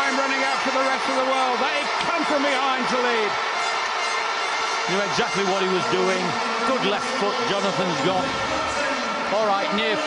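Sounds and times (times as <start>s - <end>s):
male commentator speaking: 0.0s - 3.4s, 4.8s - 10.0s
stadium crowd noise: 0.0s - 10.0s.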